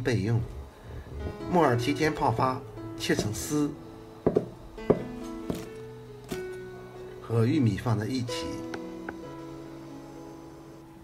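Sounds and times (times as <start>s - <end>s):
guitar music: 0.8s - 11.0s
knife chopping on cutting board: 4.3s - 5.7s.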